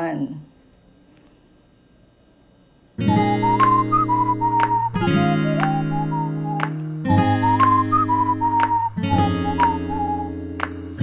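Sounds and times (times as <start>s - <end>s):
strummed acoustic guitar: 3.0s - 11.0s
whistled tune: 3.0s - 11.0s.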